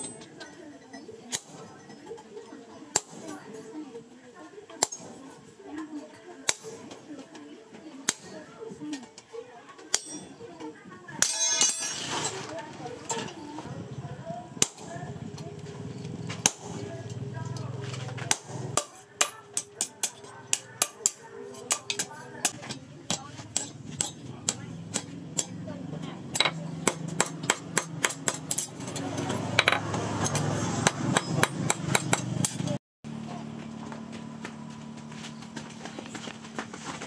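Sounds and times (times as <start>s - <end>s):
hammer ringing on steel disc: 9.9s - 10.4s, 11.2s - 12.2s.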